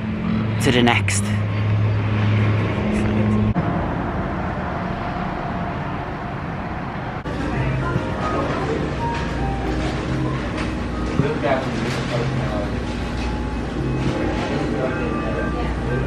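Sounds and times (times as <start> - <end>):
road noise: 0.0 - 16.0
vehicle engine hum: 0.0 - 16.0
faint music: 7.2 - 16.0
restaurant background: 7.2 - 16.0.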